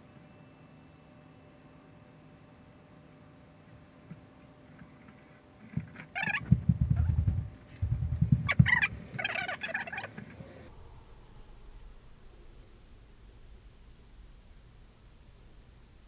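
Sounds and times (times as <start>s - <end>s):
tv soundtrack rumbling bursts: 6.2s - 16.0s.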